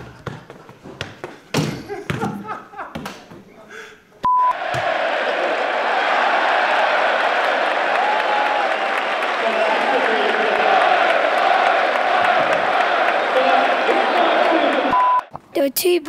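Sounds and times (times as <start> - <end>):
football thumps: 0.0 - 3.5, 4.6 - 5.0
large stadium crowd noise: 4.3 - 15.3.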